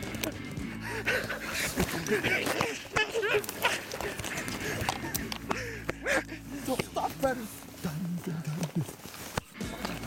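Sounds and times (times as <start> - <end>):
foliage rustling: 0.4 - 10.0.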